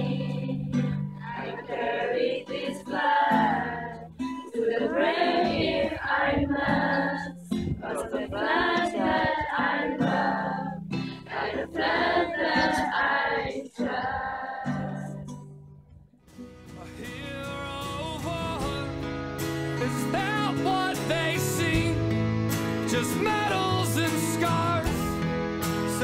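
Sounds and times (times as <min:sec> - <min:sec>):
girls singing together: 0:00.0 - 0:15.3
picked acoustic guitar: 0:00.0 - 0:26.0.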